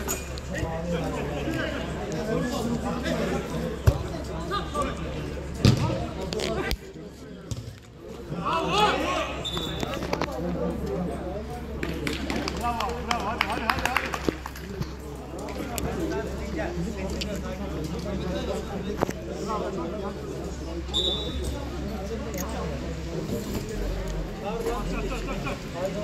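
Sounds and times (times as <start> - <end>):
players calling and shouting: 0.2 - 16.5
football kicked with a thud: 5.6 - 5.9.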